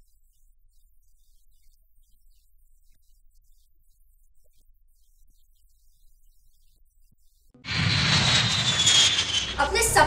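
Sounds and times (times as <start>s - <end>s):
jet aircraft passing overhead: 7.7s - 10.0s.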